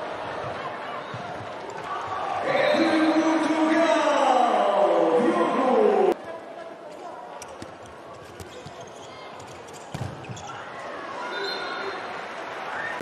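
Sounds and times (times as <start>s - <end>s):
faint voices in hall: 0.0s - 13.0s.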